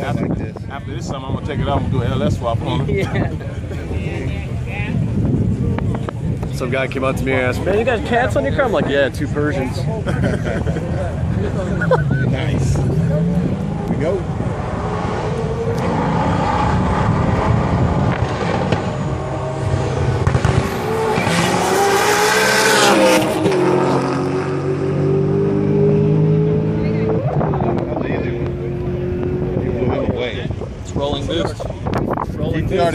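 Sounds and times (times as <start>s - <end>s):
race cars at full throttle: 0.0s - 32.9s.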